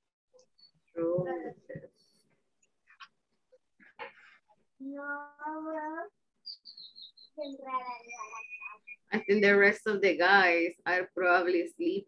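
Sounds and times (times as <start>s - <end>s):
bird chirping: 6.3s - 9.7s.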